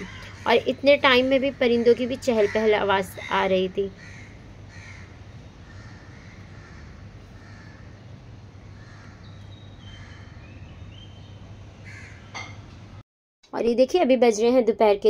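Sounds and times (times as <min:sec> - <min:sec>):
birds calling: 0:00.0 - 0:12.7
steady low hum: 0:00.0 - 0:13.0.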